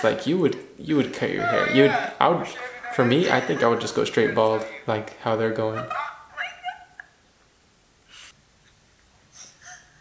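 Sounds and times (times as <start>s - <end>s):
short sniffs: 8.1s - 8.4s.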